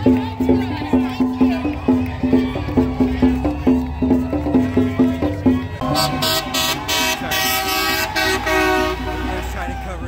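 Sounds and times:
crowd shouting: 0:00.0 - 0:10.0
car horns honking: 0:05.8 - 0:10.0.

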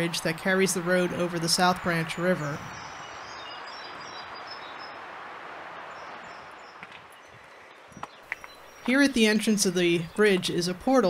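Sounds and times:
faint high bird chirps: 0:01.1 - 0:05.0.

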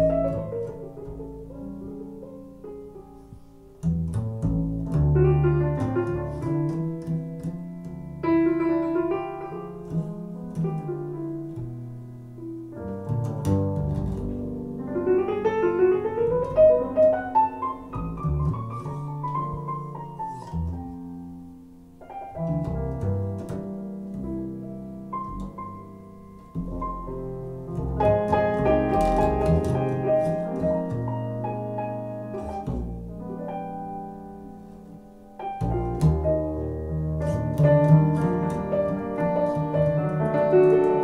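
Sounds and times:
jazz piano solo: 0:00.0 - 0:41.0
walking double bass: 0:00.0 - 0:41.0.

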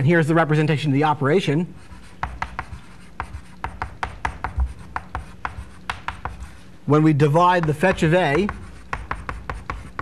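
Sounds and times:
chalk tapping and scratching on blackboard: 0:01.8 - 0:10.0.

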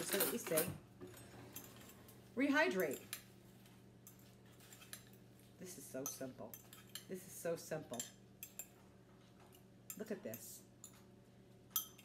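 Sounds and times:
metal fork clinking on glass: 0:11.7 - 0:12.0.

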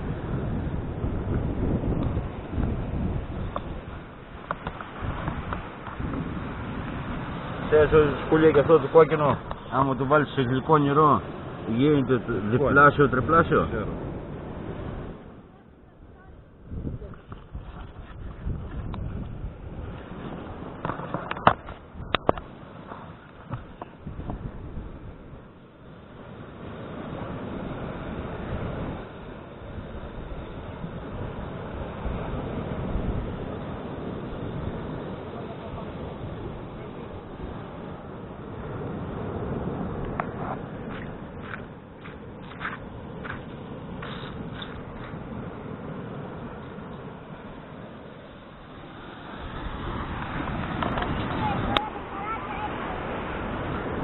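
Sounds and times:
surf washing: 0:00.0 - 0:54.0
wind on microphone: 0:00.0 - 0:54.0.

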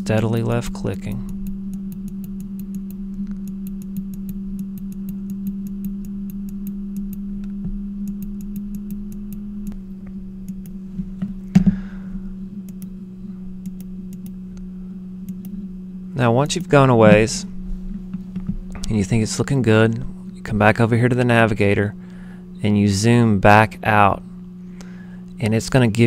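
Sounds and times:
low electrical hum: 0:00.0 - 0:26.0
computer mouse clicking: 0:01.3 - 0:09.8, 0:10.5 - 0:10.8, 0:12.6 - 0:12.9, 0:13.6 - 0:14.4, 0:15.3 - 0:15.6.

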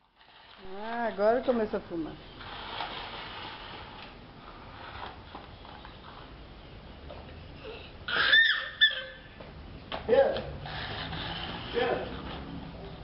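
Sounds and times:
child squealing: 0:07.6 - 0:09.4.

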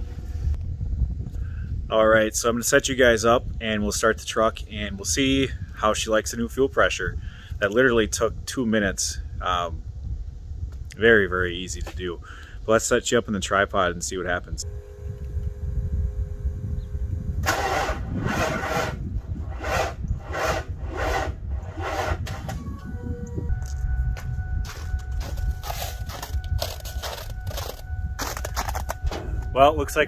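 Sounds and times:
diesel engine cranking slowly: 0:14.6 - 0:30.0
two-note tone: 0:22.6 - 0:30.0.

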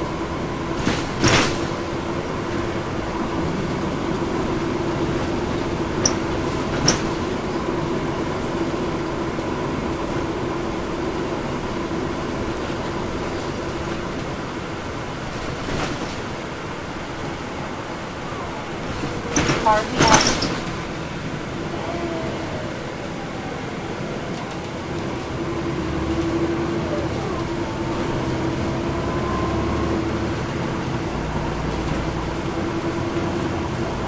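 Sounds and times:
bus engine and road hum: 0:00.0 - 0:34.0.

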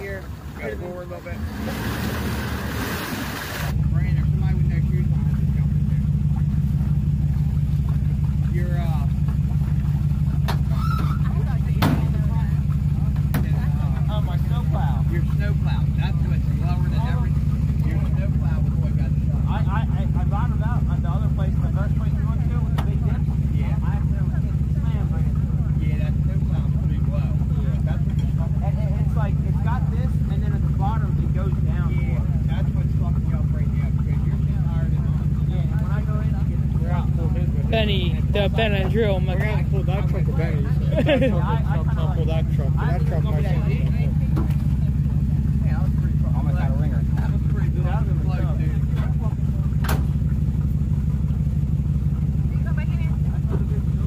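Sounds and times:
truck engine running: 0:00.0 - 0:54.0
faint voices: 0:03.8 - 0:49.9.

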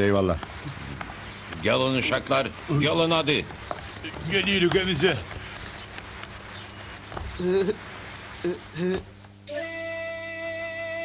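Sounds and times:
long held music chord: 0:09.5 - 0:11.0.

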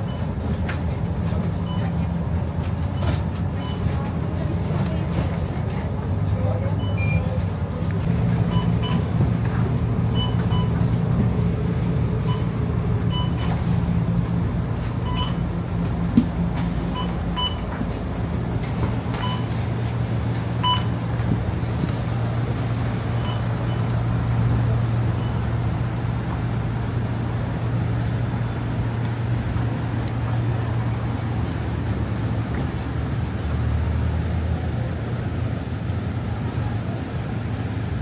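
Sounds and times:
bus engines idling: 0:00.0 - 0:38.0
short electronic beeps: 0:06.8 - 0:07.3, 0:08.5 - 0:09.1, 0:10.1 - 0:10.9, 0:12.2 - 0:13.7, 0:15.0 - 0:15.4, 0:16.9 - 0:17.7, 0:19.1 - 0:19.6, 0:20.6 - 0:21.0, 0:23.2 - 0:23.9.

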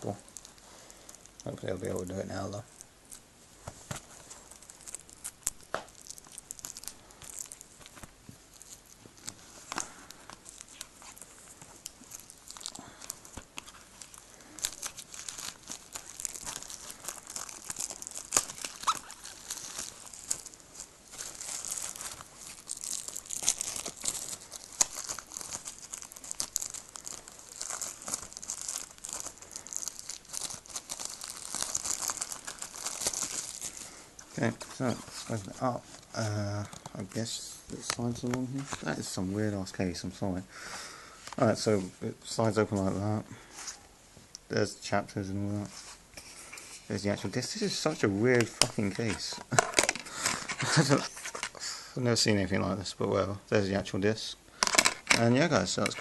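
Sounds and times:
plastic wrap crinkling and tearing: 0:00.0 - 0:40.3, 0:45.6 - 0:51.8, 0:54.6 - 0:56.0.

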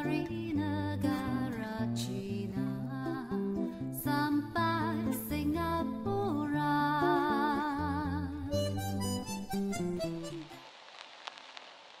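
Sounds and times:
faint hiss: 0:00.0 - 0:12.0
harmonica melody with vibrato: 0:08.4 - 0:10.6.

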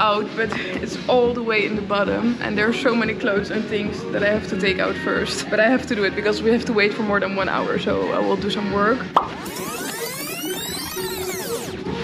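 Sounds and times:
electronic background music: 0:00.0 - 0:12.0
whirring fast-forward sweep: 0:09.4 - 0:11.7.

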